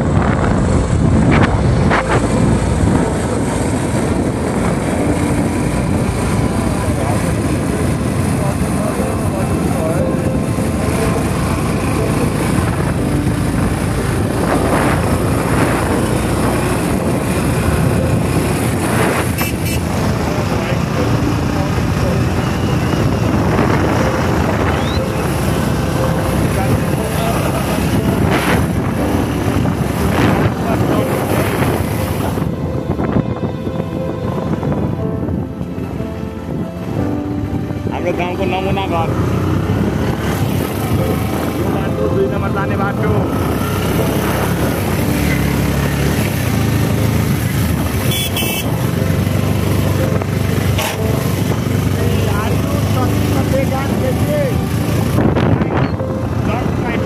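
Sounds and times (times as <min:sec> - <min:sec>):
wind rush on microphone: 0:00.0 - 0:57.0
motorcycle engine running: 0:38.1 - 0:57.0.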